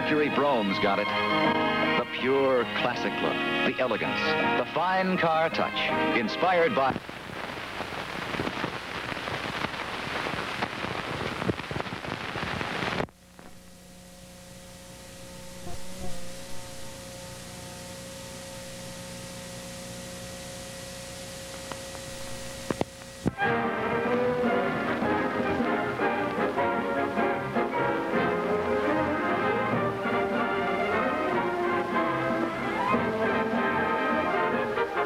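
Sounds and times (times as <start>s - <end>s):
videotape hiss and crackle: 0.0s - 35.0s
steady hum: 6.9s - 35.0s
faint held tones: 13.3s - 23.2s.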